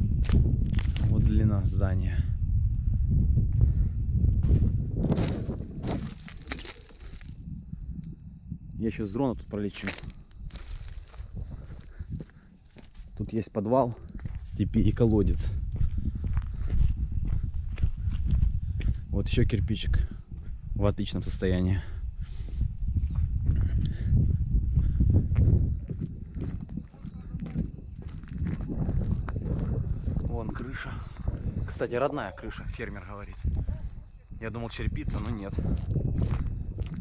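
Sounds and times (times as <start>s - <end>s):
low microphone rumble: 0.0s - 13.3s, 14.0s - 37.0s
footsteps crunching through debris: 0.2s - 1.4s, 4.4s - 7.4s, 9.7s - 13.3s, 26.3s - 29.7s
footsteps on dirt: 3.5s - 7.4s, 9.7s - 19.1s, 22.4s - 31.9s, 35.2s - 37.0s.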